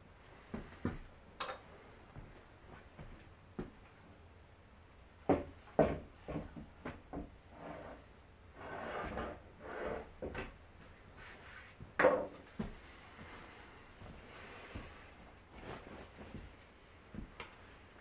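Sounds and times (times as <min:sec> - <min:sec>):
rubbing and scraping: 0:07.5 - 0:10.3.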